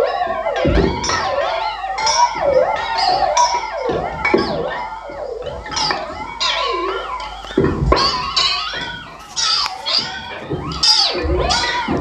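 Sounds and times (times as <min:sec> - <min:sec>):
deep thuds: 0:00.0 - 0:12.0.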